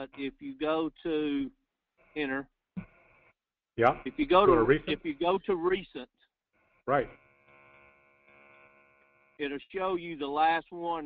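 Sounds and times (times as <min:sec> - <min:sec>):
faint electrical hum: 0:06.9 - 0:10.7.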